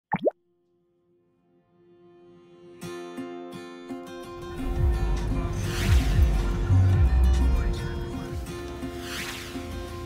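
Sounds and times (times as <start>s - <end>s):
swooping bloop sound effect: 0.1s - 0.4s.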